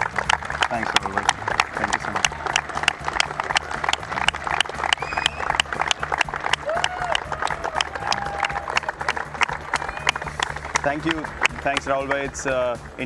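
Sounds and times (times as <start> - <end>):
people clapping: 0.0 - 13.0.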